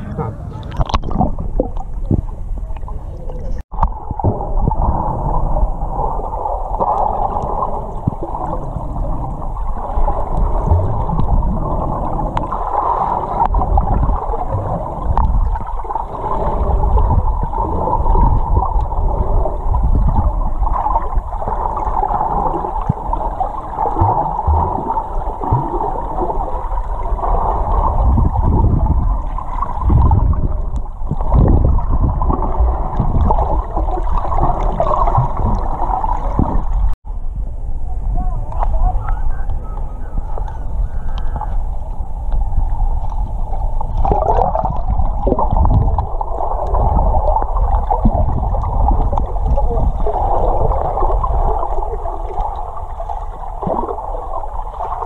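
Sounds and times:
muffled underwater gurgling: 0.0 - 37.0, 37.7 - 55.0
low underwater rumbles: 0.0 - 55.0.

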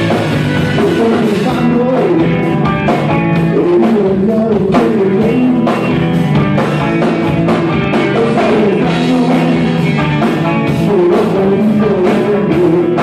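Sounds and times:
person singing: 0.0 - 2.5, 3.2 - 6.0, 7.9 - 13.0
bass guitar: 0.0 - 13.0
drum beat: 0.0 - 13.0
electric guitar: 0.0 - 13.0
organ: 0.0 - 13.0.

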